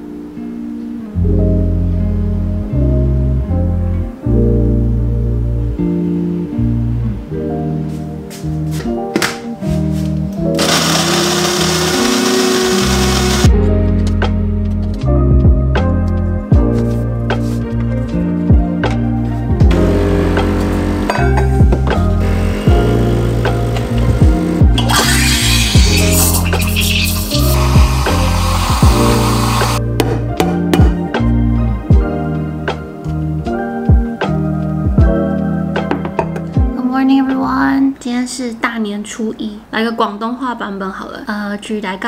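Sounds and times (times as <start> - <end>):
coffee grinder grinding beans: 10.6 - 13.5, 24.8 - 29.8
steam wand hissing: 10.6 - 13.5, 24.8 - 29.8
music with deep bass beat: 13.0 - 32.4, 33.4 - 36.7.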